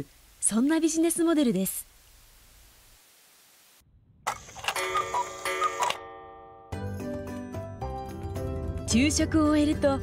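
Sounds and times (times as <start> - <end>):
bright ringing tones: 4.7 - 6.8.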